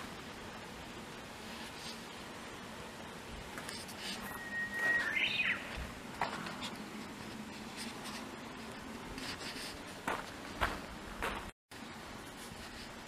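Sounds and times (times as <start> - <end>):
songbird whistled song: 4.1 - 5.9
footsteps clicking and scuffing: 5.7 - 11.5.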